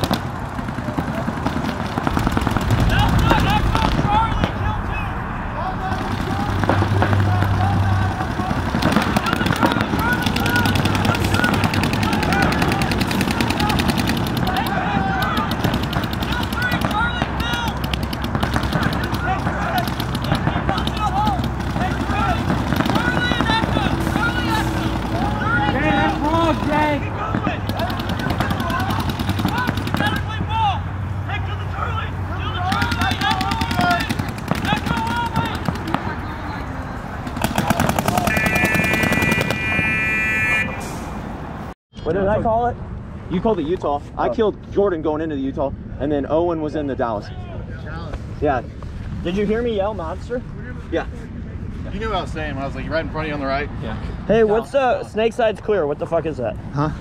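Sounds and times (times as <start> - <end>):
paintball markers firing rapidly: 0.0 - 4.0, 5.9 - 30.4, 32.6 - 36.2, 37.3 - 39.8
high-pitched horn tone: 38.2 - 41.1.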